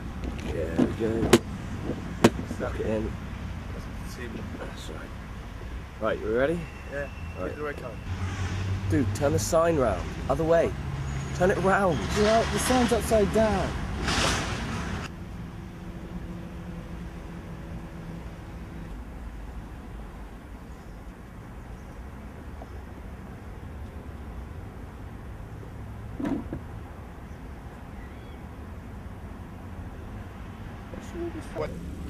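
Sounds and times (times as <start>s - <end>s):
outdoor background rumble: 0.0s - 32.0s.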